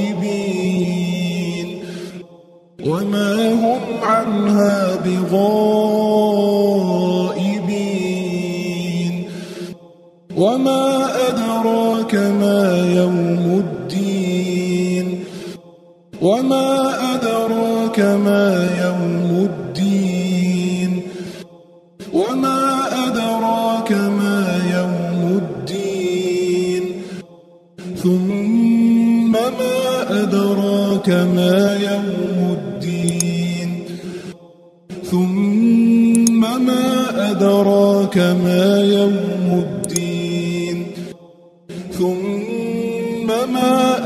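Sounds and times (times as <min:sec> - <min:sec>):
person chanting recitation: 0:00.0 - 0:44.0.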